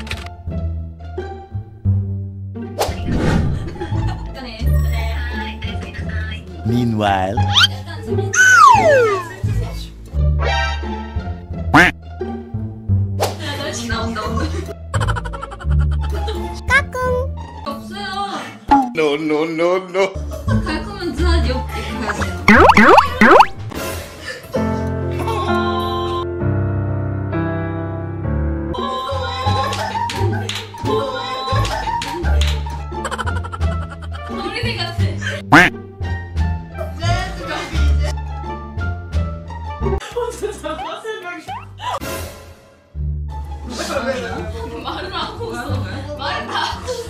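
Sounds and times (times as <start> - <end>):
background music: 0.0 - 47.0
cartoon quack-like squawk: 7.5 - 7.7, 8.4 - 9.3, 11.8 - 12.0, 22.5 - 23.5, 35.5 - 35.8
loud squawk: 7.5 - 7.8, 8.4 - 9.3
background music with bass line: 11.6 - 13.2, 22.1 - 23.8, 35.4 - 36.7.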